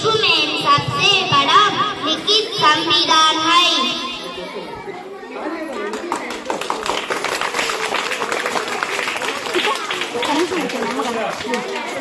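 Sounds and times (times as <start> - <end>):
schoolchildren chattering: 0.0 - 12.0.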